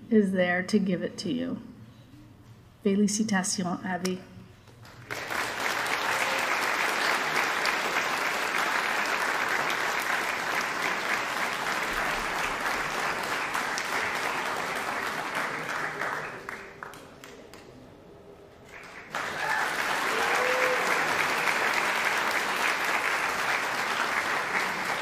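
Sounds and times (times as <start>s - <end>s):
audience applauding: 4.8s - 17.8s, 18.6s - 25.0s.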